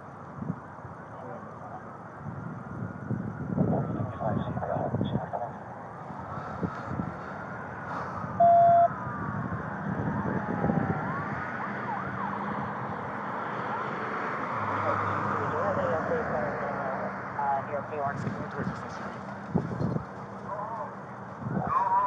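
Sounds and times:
emergency sirens wailing: 0.0s - 22.0s
loud beep: 8.4s - 8.9s.

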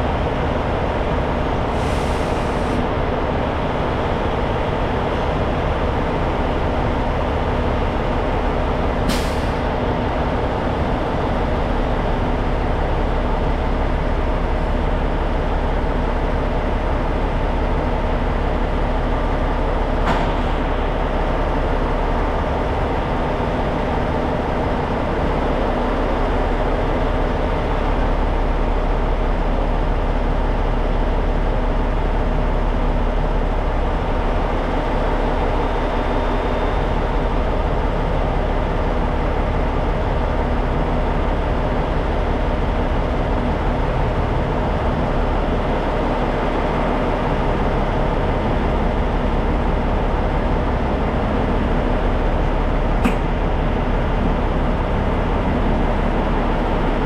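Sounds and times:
short click: 53.0s - 53.3s.

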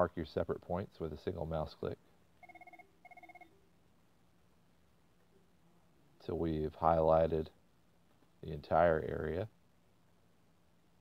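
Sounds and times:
faint warbling electronic ring: 2.4s - 3.6s.

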